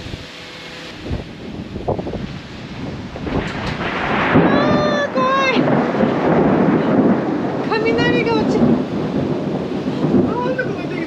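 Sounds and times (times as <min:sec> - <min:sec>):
heavy rain: 0:00.0 - 0:11.0
thunder rumbling: 0:00.9 - 0:11.0.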